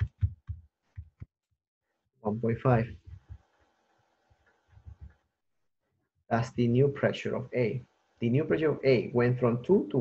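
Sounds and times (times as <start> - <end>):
calculator keys tapping: 0.0 - 1.3, 3.0 - 3.5, 4.7 - 5.2.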